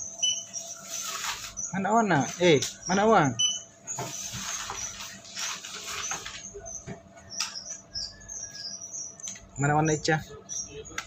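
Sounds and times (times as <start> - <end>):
squeaky sandals chirping: 0.0 - 11.0
rustling noise: 0.6 - 1.6, 4.0 - 6.4.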